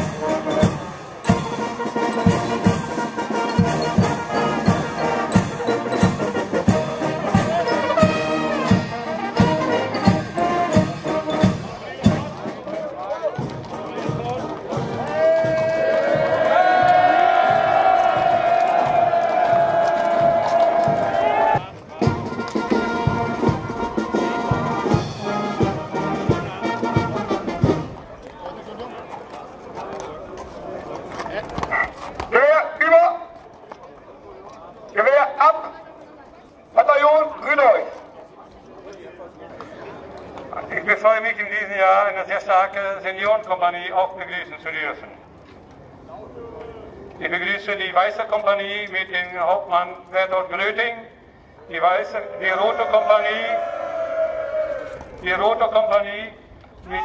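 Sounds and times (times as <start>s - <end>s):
brass band playing a march: 0.0s - 12.8s, 13.4s - 28.1s
bass drum beat: 13.4s - 22.2s.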